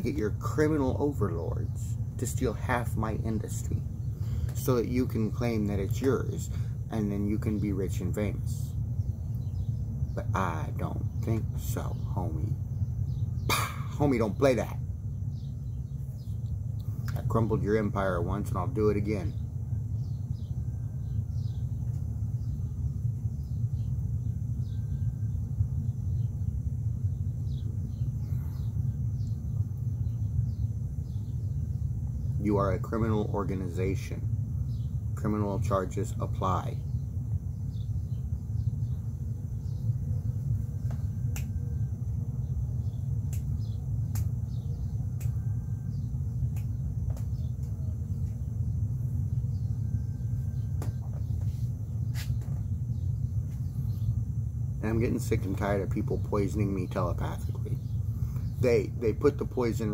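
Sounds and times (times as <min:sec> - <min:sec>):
bird chirps: 0:00.0 - 0:59.9
low outdoor rumble: 0:00.0 - 0:59.9.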